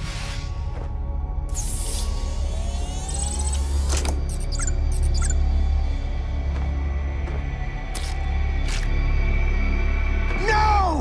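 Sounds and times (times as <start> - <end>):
rising whine: 1.6 - 6.0
high electronic beeps: 2.7 - 5.5.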